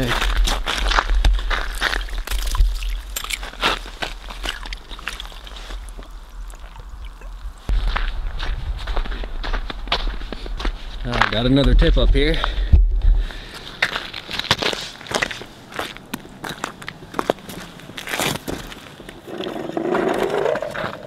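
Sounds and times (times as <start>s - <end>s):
footsteps crunching on snow: 0.0s - 19.3s
water sloshing: 1.7s - 7.7s
wind rumble on microphone: 5.6s - 13.4s.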